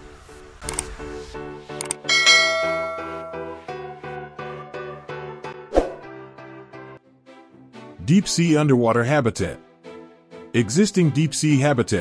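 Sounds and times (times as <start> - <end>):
notification bell chime: 2.1 - 3.7.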